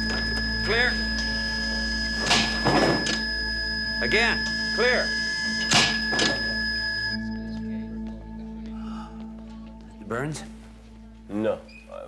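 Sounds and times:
heart monitor flatline tone: 0.0 - 7.6
defibrillator shock jolt: 2.2 - 3.2, 5.6 - 6.4.

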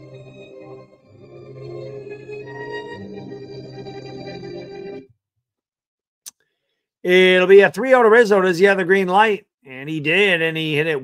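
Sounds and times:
recorded song playing: 0.0 - 5.1.

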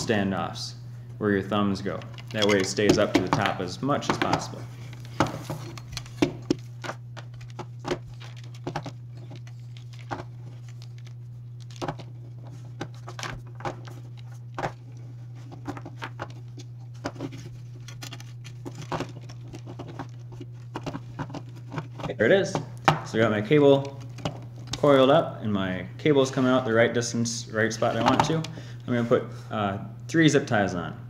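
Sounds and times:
steady low hum: 0.0 - 31.0
cable coiling clicks and rustles: 1.9 - 22.7.

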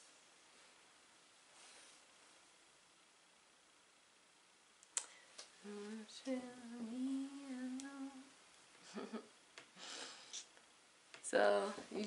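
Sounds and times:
woman humming: 5.6 - 10.0.

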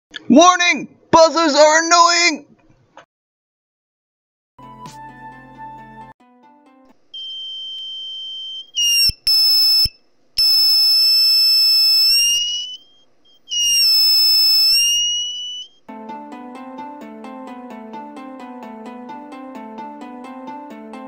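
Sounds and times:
background music: 4.6 - 7.1, 15.9 - 21.0
shrill electronic buzzer tone: 7.2 - 15.8.

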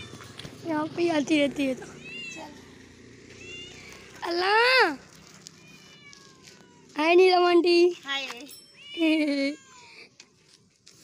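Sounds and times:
cat meowing: 5.6 - 7.0.

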